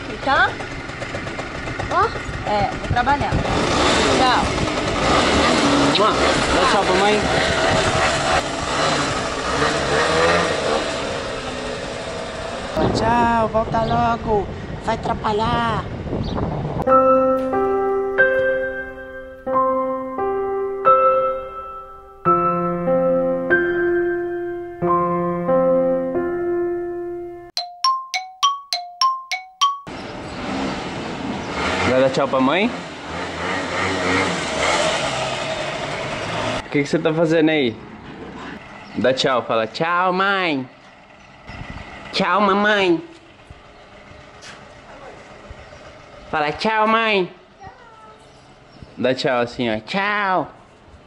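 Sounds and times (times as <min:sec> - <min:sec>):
motor scooter engine revving: 0:00.0 - 0:12.8, 0:30.0 - 0:36.7
outdoor street noise: 0:00.0 - 0:27.3, 0:29.6 - 0:51.0
piano piece: 0:16.8 - 0:29.9
two-note metal bell chime: 0:16.9 - 0:25.4, 0:27.0 - 0:29.9.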